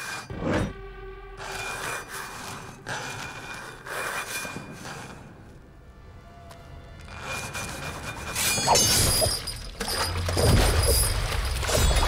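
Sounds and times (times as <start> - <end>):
background film score: 0.0 - 12.0.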